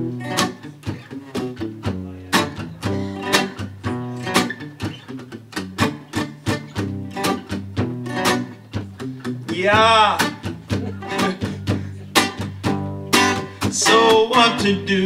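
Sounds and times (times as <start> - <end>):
acoustic guitar strumming chords: 0.0 - 15.0.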